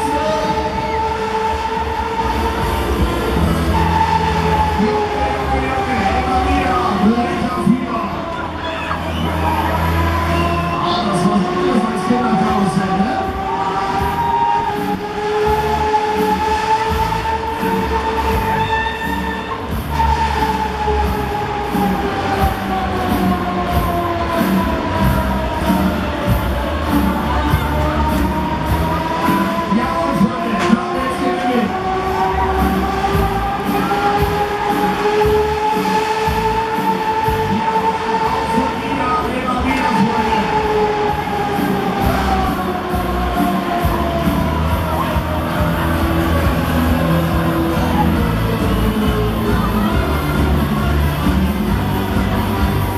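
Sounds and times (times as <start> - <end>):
fairground ride mechanical whine: 0.0 - 52.9
loud music from sound system: 0.0 - 52.9.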